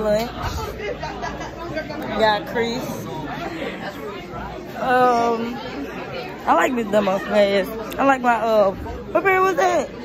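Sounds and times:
students chattering: 0.0s - 10.0s.

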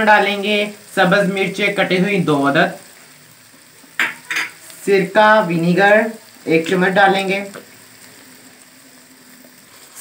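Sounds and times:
meat sizzling in a wok: 0.0s - 10.0s.

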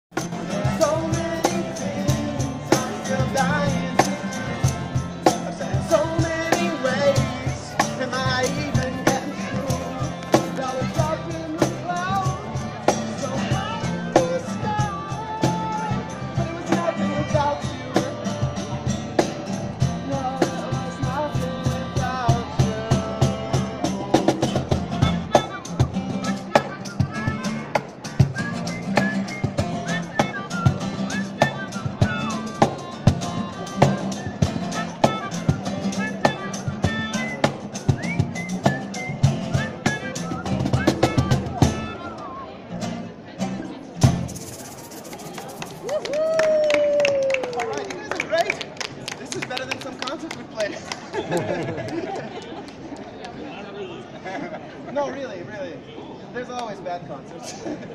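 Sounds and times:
strummed acoustic guitars: 0.1s - 45.8s
cajon beat: 0.1s - 52.9s
person singing: 0.2s - 18.8s, 19.8s - 24.4s.

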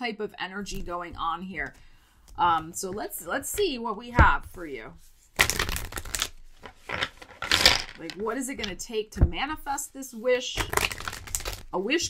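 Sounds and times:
cards rustling with light clicks: 5.1s - 8.8s, 10.6s - 11.7s.

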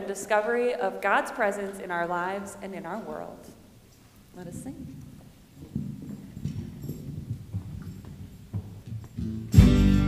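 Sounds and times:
soft low thumps and knocks: 4.5s - 9.2s.

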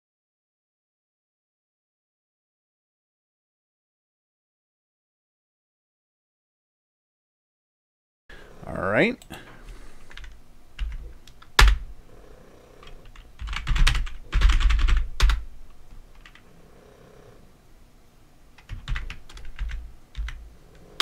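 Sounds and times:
typing on computer keyboard: 10.1s - 11.8s, 12.8s - 15.5s, 16.1s - 16.4s, 18.6s - 20.4s.

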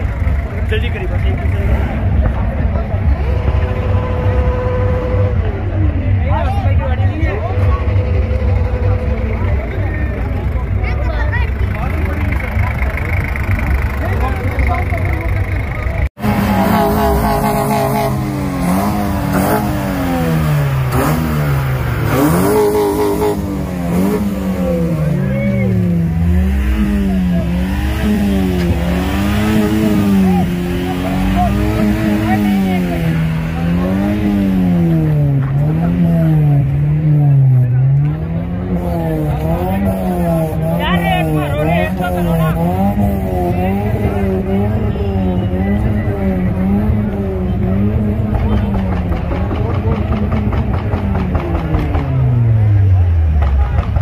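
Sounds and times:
car engine revving: 0.0s - 54.0s
crowd chatter: 0.0s - 54.0s.

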